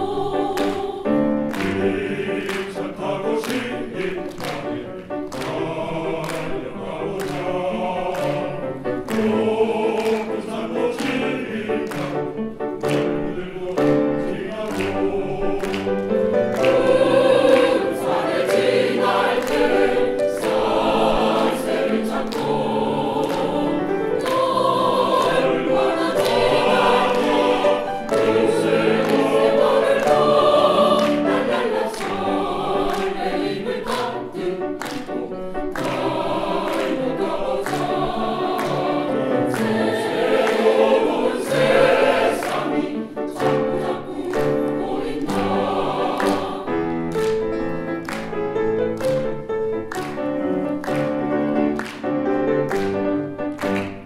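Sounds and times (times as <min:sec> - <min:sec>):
mixed choir singing: 0:00.0 - 0:54.0
piano accompaniment: 0:00.0 - 0:54.0.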